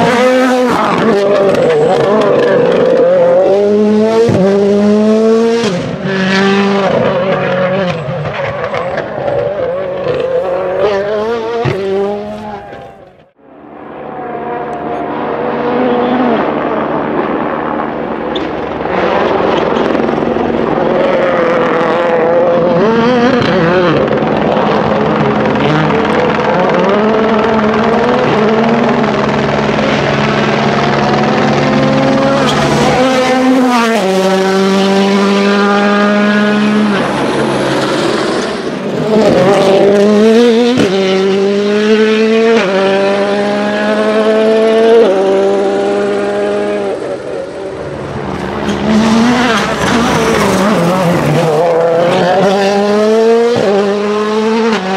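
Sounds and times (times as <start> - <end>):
rally car engine revving: 0.0 - 54.9.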